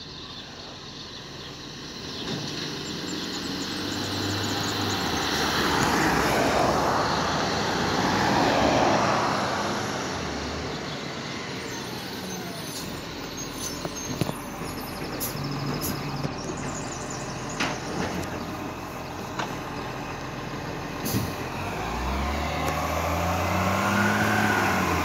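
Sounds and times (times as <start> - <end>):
pickup truck driving past: 1.8 - 13.8, 14.4 - 25.0
garbage truck engine running: 10.1 - 23.9.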